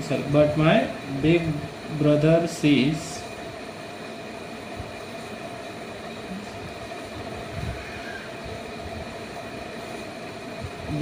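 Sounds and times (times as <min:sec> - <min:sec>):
background hum: 0:00.0 - 0:11.0.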